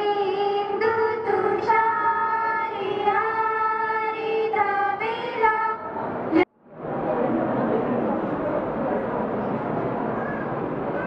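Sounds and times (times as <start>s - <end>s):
girls singing a prayer: 0.0s - 6.0s.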